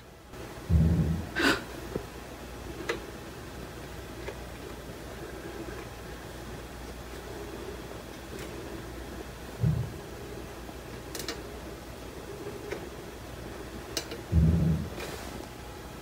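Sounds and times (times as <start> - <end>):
steady low hum: 0.0 - 16.0
loud dull thumps: 0.7 - 1.4, 9.6 - 10.0, 14.3 - 15.0.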